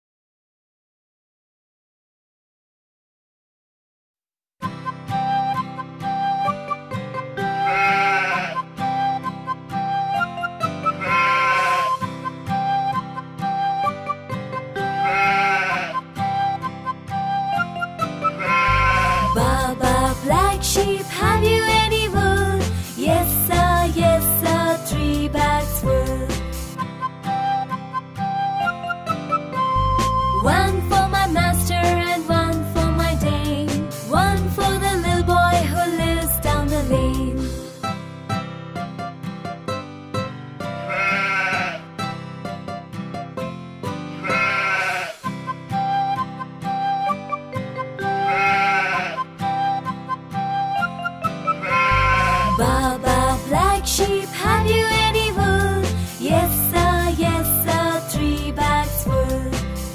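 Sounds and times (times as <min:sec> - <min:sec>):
flute-like melody: 0:04.6 - 0:20.1, 0:26.8 - 0:31.6, 0:45.2 - 0:53.8
children's instrumental tune: 0:04.6 - 0:59.9
sheep bleating: 0:07.5 - 0:08.7, 0:10.9 - 0:12.0, 0:15.0 - 0:16.1, 0:18.3 - 0:19.3, 0:40.8 - 0:41.9, 0:44.2 - 0:45.3, 0:48.2 - 0:49.3, 0:51.6 - 0:52.6.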